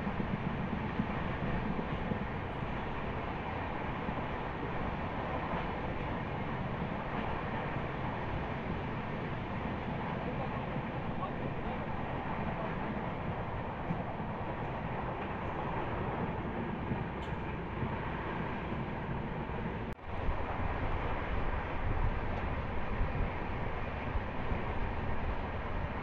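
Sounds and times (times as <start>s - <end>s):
train wheels rumbling on rail: 0.0s - 26.0s.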